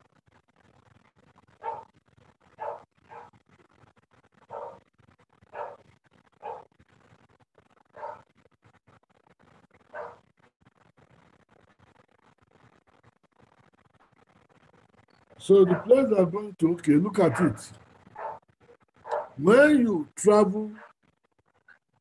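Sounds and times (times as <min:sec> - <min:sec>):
dog barking: 0:01.6 - 0:01.9, 0:02.6 - 0:03.4, 0:04.5 - 0:04.8, 0:05.5 - 0:05.8, 0:06.4 - 0:06.7, 0:07.9 - 0:08.3, 0:09.9 - 0:10.2, 0:15.6 - 0:16.0, 0:18.2 - 0:18.4, 0:19.0 - 0:19.4
people talking: 0:15.4 - 0:17.8, 0:19.4 - 0:20.8.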